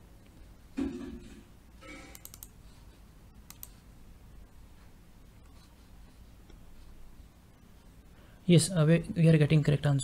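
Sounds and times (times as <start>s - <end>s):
low room noise: 0.0s - 10.0s
computer mouse clicks: 2.1s - 2.6s, 3.4s - 3.8s.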